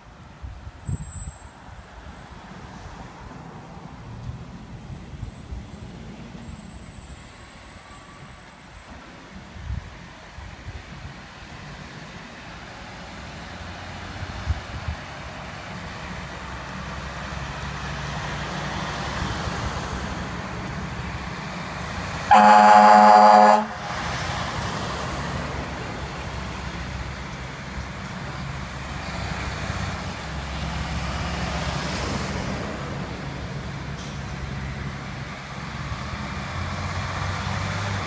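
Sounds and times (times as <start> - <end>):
diesel truck engine rumble: 0.0 - 38.0.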